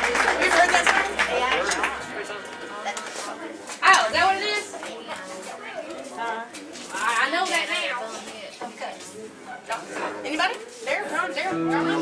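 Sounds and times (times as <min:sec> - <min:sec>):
low steady hum: 0:00.0 - 0:04.6
indistinct voices talking: 0:00.0 - 0:05.8, 0:11.5 - 0:12.0.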